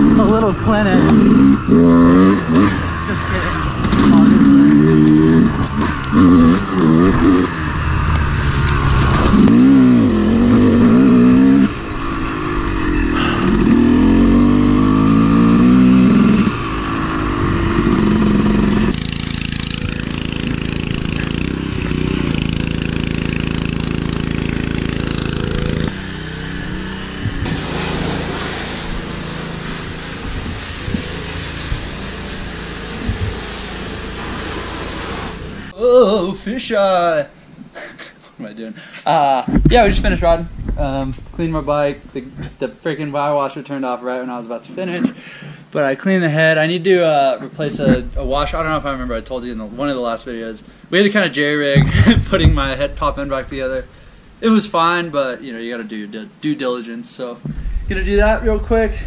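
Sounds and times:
dirt bike engine revving: 0.0 - 35.8, 51.6 - 55.2
dirt bike engine idling: 0.0 - 36.3.

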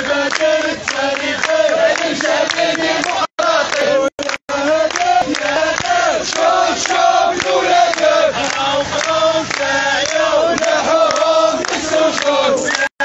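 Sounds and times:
crowd chanting slogans: 0.0 - 13.0
hand-clapping: 0.0 - 13.0.

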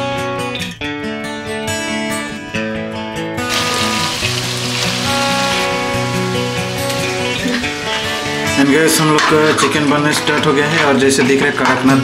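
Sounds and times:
acoustic guitar music: 0.0 - 12.0
chicken sizzling in hot oil: 3.5 - 9.8.

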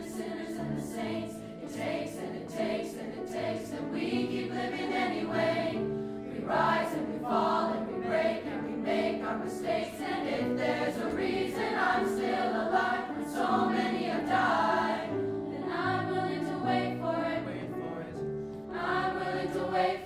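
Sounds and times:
mixed choir singing: 0.0 - 20.0
piano accompaniment: 0.0 - 20.0.

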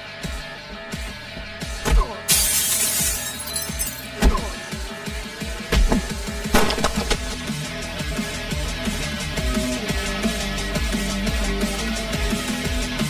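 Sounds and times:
glass window shattering: 1.9 - 4.6, 5.7 - 7.4
glass shards tinkling: 2.3 - 4.2
film score music: 4.2 - 13.0
heavy thuds: 5.6 - 7.4.

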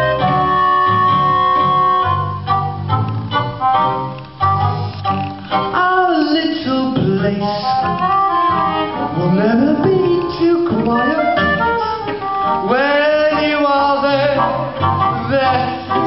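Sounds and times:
gliding long-held melody notes: 0.0 - 16.0.

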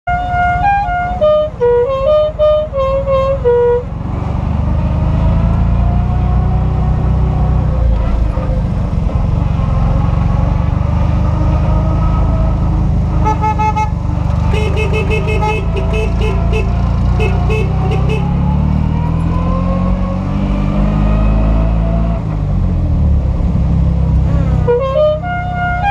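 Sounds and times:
musical car horn tune: 0.1 - 3.9, 13.1 - 18.5, 24.6 - 25.9
rapid horn beeps: 13.2 - 18.4.

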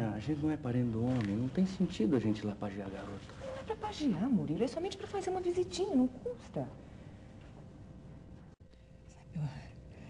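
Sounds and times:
television soundtrack hiss: 0.0 - 7.1, 8.1 - 10.0.

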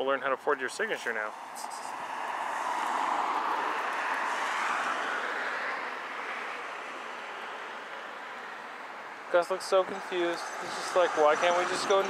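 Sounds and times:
car passing: 1.3 - 9.3, 10.3 - 12.0.

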